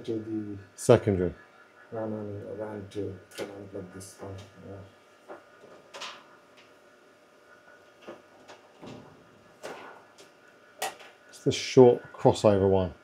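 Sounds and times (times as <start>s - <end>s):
faint steady equipment tone: 0.0s - 13.0s
cable clicks and rustles: 5.2s - 6.8s.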